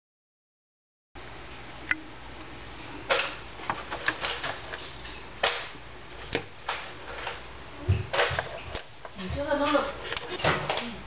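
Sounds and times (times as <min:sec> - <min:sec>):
low steady hum: 0:01.2 - 0:11.0.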